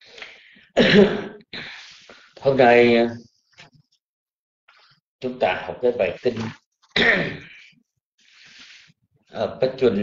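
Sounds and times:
person clearing throat: 0.8 - 1.4, 7.0 - 7.6.

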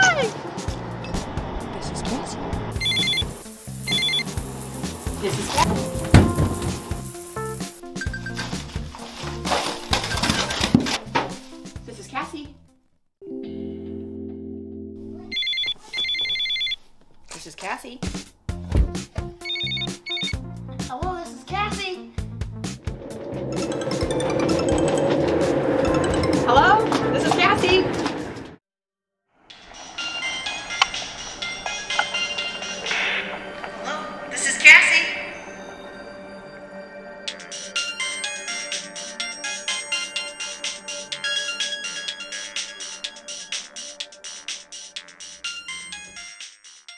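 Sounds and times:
bright chiming ringtone melody: 2.8 - 4.2, 8.0 - 8.5, 15.3 - 16.8, 19.4 - 20.4, 37.4 - 43.7
electronic telephone ringing: 2.8 - 4.3, 15.3 - 16.8, 19.4 - 20.4.

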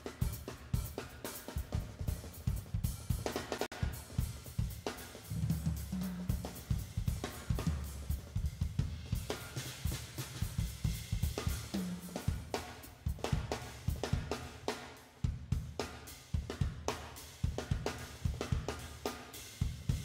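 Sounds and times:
drum kit playing a groove: 0.0 - 20.0.

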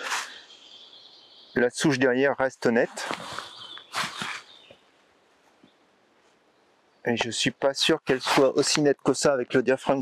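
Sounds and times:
man talking: 1.6 - 3.3, 7.1 - 10.0.

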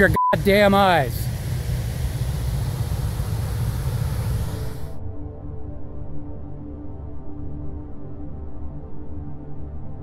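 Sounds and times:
outdoor rumble with hiss: 0.0 - 5.0
music: 4.9 - 10.0.

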